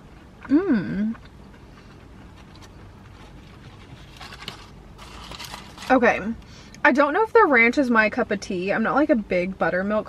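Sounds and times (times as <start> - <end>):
chewing food: 0.0 - 5.9
paper container rustling: 3.1 - 6.1.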